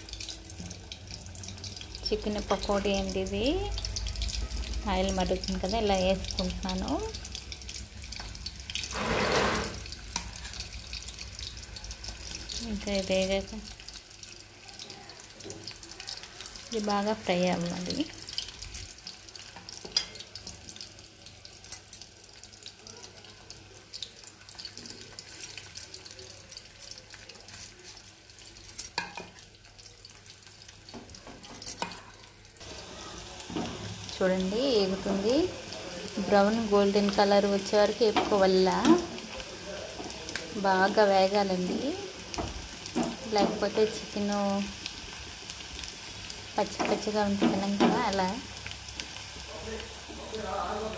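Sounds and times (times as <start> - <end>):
food deep-frying in hot oil: 0.0 - 50.9.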